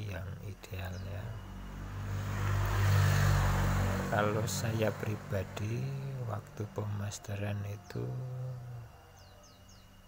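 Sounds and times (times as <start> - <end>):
small bird chirping: 0.0 - 1.9, 5.3 - 10.0.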